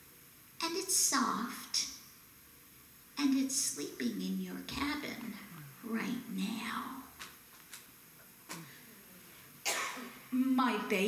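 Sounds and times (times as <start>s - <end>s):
woman speaking softly: 3.2s - 7.1s, 10.3s - 11.0s.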